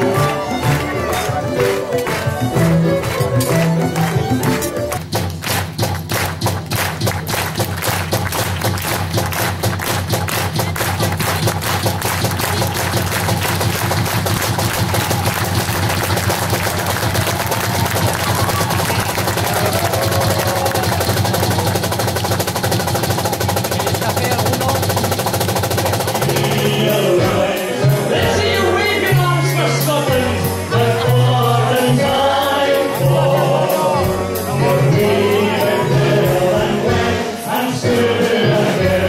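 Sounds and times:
rapid drum solo with sticks: 0.0s - 39.0s.

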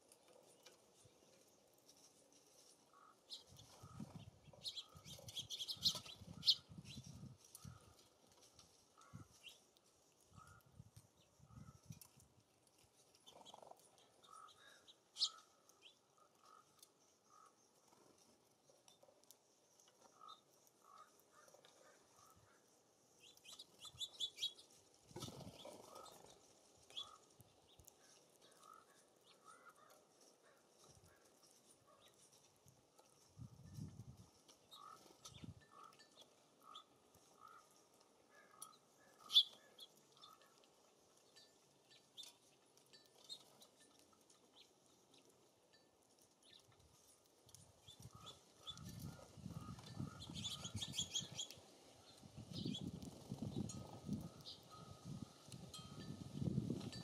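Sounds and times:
small songbirds chirping: 0.0s - 57.0s
wind rumbling on microphone: 3.6s - 8.0s, 10.3s - 12.4s, 33.3s - 34.4s, 47.6s - 57.0s.

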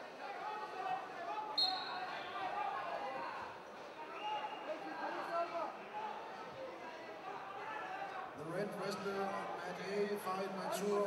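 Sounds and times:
crowd voices in hall: 0.0s - 11.0s
referee whistle blast: 1.6s - 2.2s.

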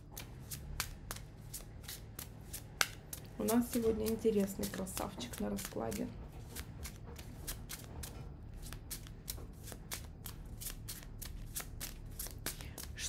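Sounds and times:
cards being shuffled: 0.0s - 13.0s.

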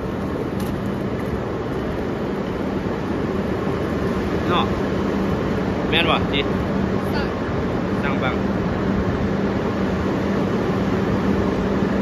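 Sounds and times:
constant hum: 0.0s - 12.0s.

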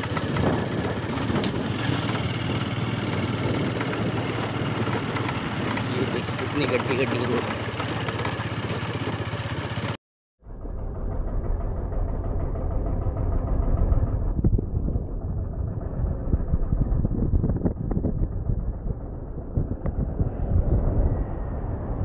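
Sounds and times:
motorcycle running: 0.0s - 22.0s
road and wind noise: 0.0s - 22.0s
heavy low rumble: 10.4s - 22.0s.

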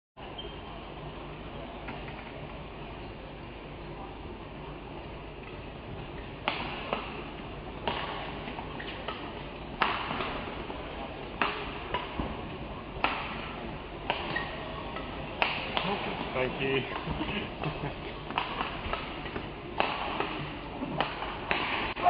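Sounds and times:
rackets hitting shuttlecock: 6.4s - 10.7s, 11.4s - 16.3s, 17.0s - 22.0s.

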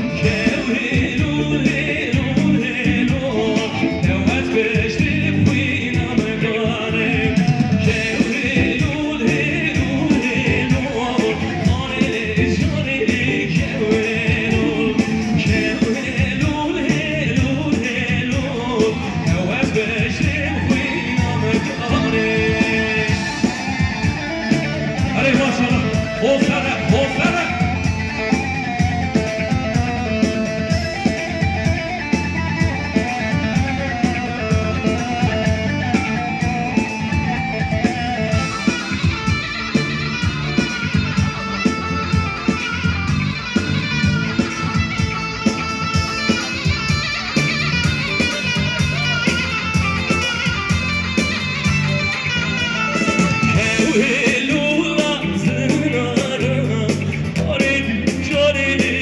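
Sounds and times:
person singing: 0.0s - 59.0s
plucked-string dance music: 7.4s - 59.0s.

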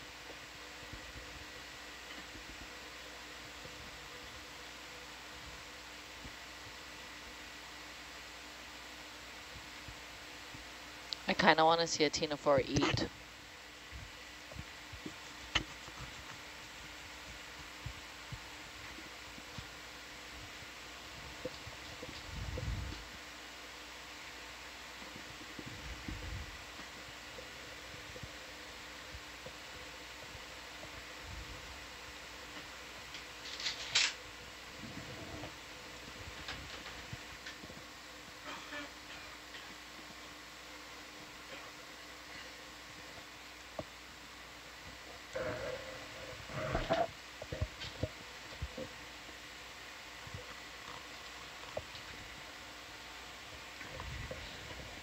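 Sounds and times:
equipment fans humming: 0.0s - 55.0s.

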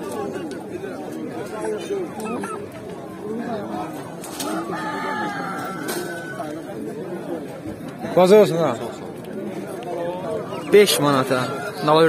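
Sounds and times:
market chatter: 0.0s - 12.0s
rooster crowing: 4.6s - 6.4s.

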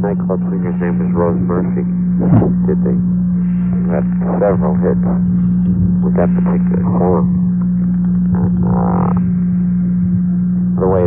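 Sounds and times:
low electrical hum: 0.0s - 11.0s
person speaking: 3.6s - 5.2s, 6.0s - 7.4s, 8.2s - 9.2s.

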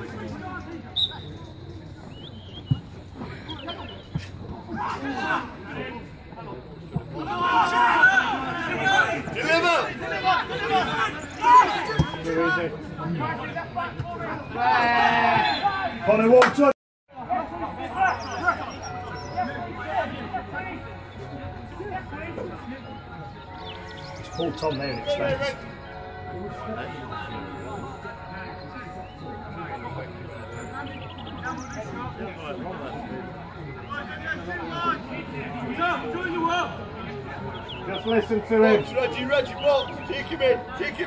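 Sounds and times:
people shouting and calling: 3.3s - 41.0s
people shouting: 4.7s - 6.0s, 7.2s - 16.3s.

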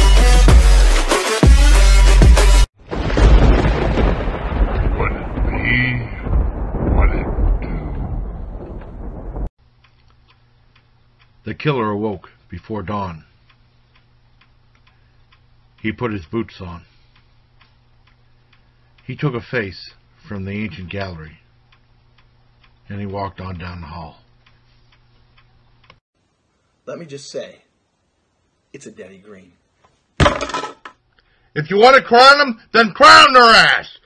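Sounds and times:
loud low rumble: 3.3s - 9.5s
low electrical hum: 9.6s - 34.0s
clock ticking: 12.6s - 19.4s, 20.3s - 26.0s
man's voice: 31.6s - 34.0s.

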